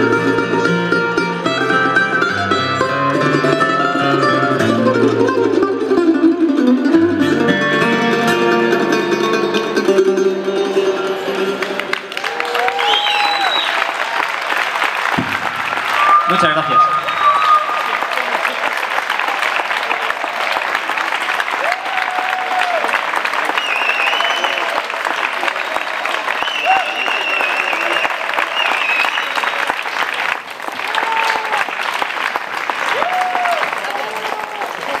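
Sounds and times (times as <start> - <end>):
audience applauding: 11.5 - 35.0.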